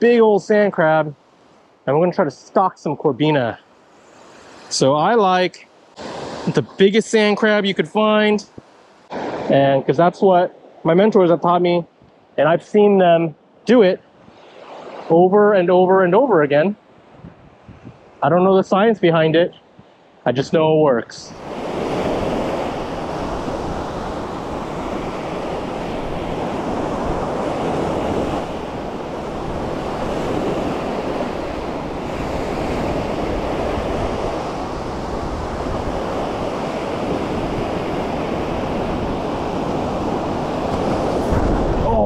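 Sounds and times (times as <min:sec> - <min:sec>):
ocean surf breaking on beach: 0:02.9 - 0:11.0, 0:14.3 - 0:16.4, 0:21.3 - 0:42.0.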